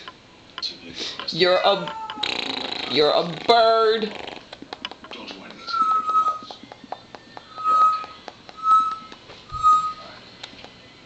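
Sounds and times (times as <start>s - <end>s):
high whistled note: 7.5s - 10.2s.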